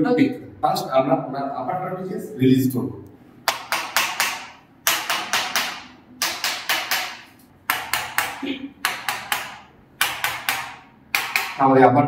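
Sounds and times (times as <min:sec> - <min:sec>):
mallet knocking wooden tool: 0:03.4 - 0:11.7.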